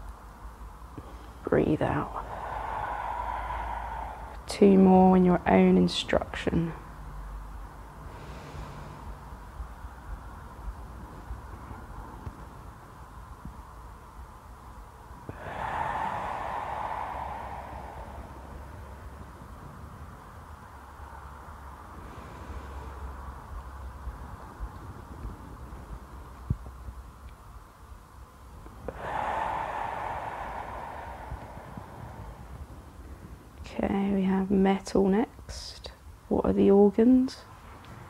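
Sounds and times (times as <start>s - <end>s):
breathy exhale: 1.0s - 5.0s, 8.0s - 9.3s, 15.3s - 19.7s, 21.9s - 23.2s, 28.8s - 33.4s.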